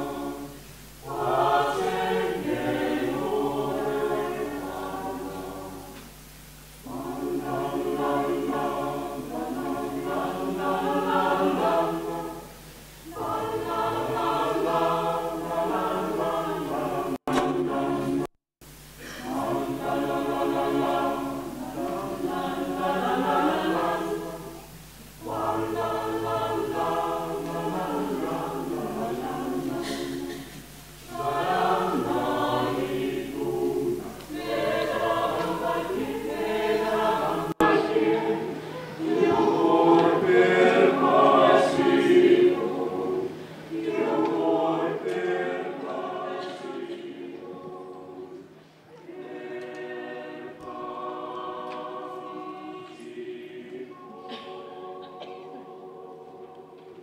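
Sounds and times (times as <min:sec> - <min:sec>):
mixed choir singing unaccompanied: 0:00.0 - 0:57.0
singers breathing: 0:38.5 - 0:39.0, 0:43.3 - 0:43.7, 0:48.5 - 0:49.0.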